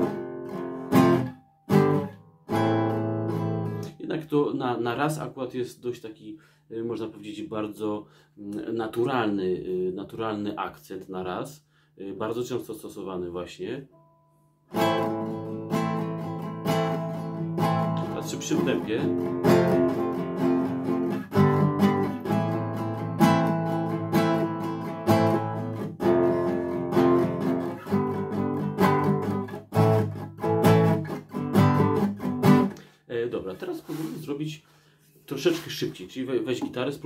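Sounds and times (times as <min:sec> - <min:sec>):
nylon-string guitar strumming: 0:00.0 - 0:04.3, 0:13.9 - 0:32.9.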